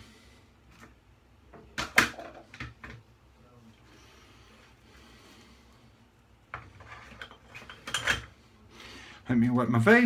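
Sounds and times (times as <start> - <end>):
objects clattering: 6.5 - 8.4.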